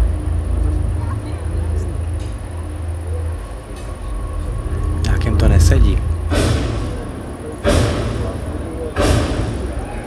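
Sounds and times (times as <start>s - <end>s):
steady low rumble: 0.0s - 10.0s
heavy booming hits: 4.6s - 10.0s.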